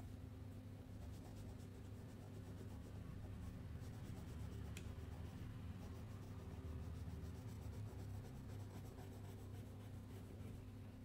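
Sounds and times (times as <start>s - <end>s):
crayon scribbling on paper: 1.0s - 10.6s.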